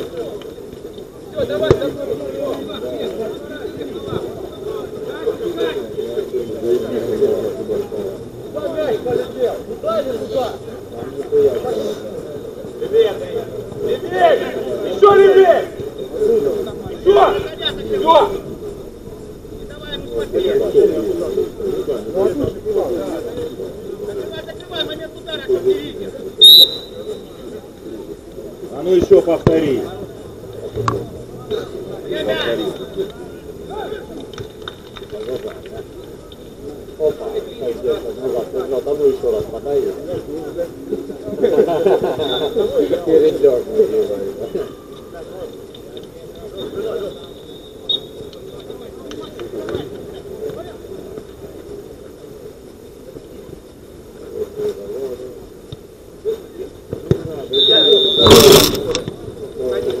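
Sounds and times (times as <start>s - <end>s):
players shouting: 12.7s - 27.6s, 57.5s - 60.0s.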